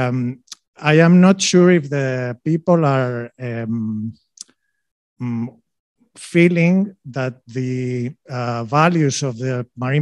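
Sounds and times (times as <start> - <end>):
man speaking into a microphone: 0.0 - 4.4, 5.2 - 5.6, 6.2 - 10.0.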